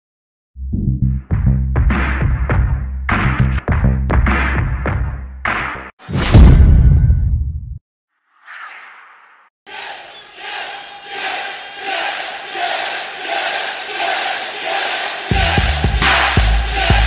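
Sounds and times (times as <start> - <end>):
hip hop beat with heavy bass: 1.2 - 5.9, 15.2 - 17.0
crowd chanting: 9.7 - 17.0.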